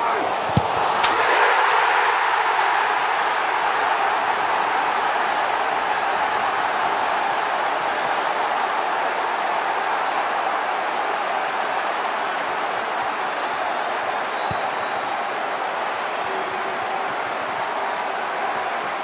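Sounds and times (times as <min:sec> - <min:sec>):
stadium crowd cheering: 0:00.0 - 0:19.0.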